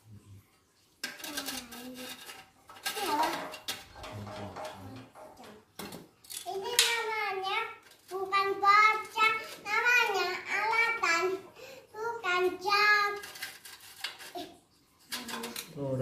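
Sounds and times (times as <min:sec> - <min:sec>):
child talking and singing: 0:01.2 - 0:02.3, 0:02.9 - 0:03.6, 0:04.6 - 0:05.8, 0:06.4 - 0:13.3, 0:14.3 - 0:15.7
sharp knocks: 0:03.3 - 0:06.1.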